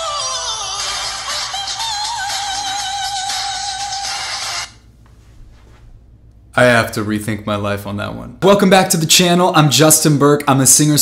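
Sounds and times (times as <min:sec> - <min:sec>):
music: 0:00.0 - 0:04.8.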